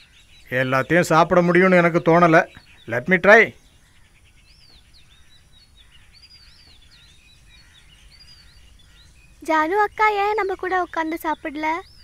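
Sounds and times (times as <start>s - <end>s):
birds chirping and whistling: 0.0s - 12.0s.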